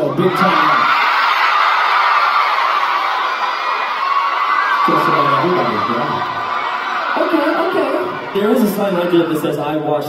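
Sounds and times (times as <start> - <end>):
crowd screaming and cheering: 0.0 - 10.0.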